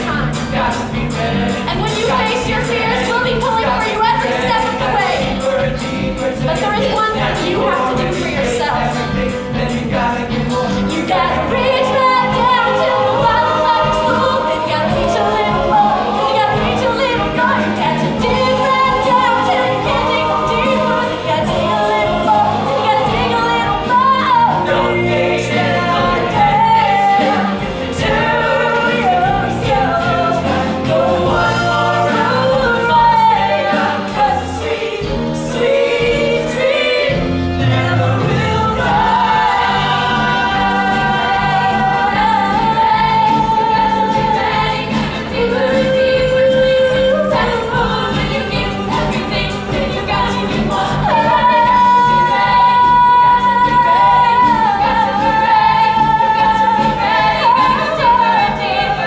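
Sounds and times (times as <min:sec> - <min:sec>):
band accompaniment: 0:00.0 - 0:59.0
voices singing together: 0:00.0 - 0:59.0.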